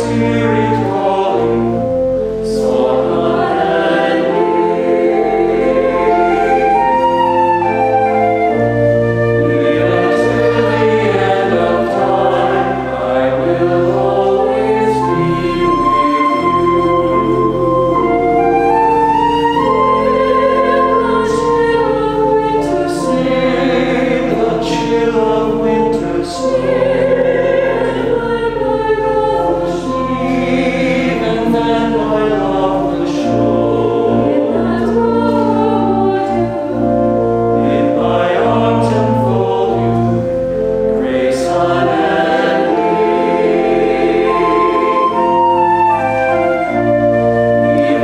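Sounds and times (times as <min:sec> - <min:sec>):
choir singing: 0:00.0 - 0:48.0
pipe organ: 0:00.0 - 0:48.0.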